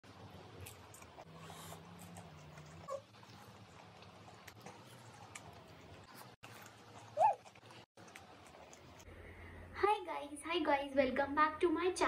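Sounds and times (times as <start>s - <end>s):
chewing mouth noises: 0.5s - 9.1s.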